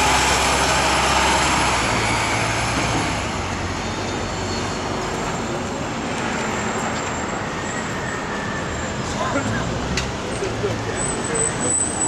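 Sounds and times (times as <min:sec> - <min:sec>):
truck passing: 0:00.0 - 0:12.0
vehicle engines at low speed: 0:00.0 - 0:12.0.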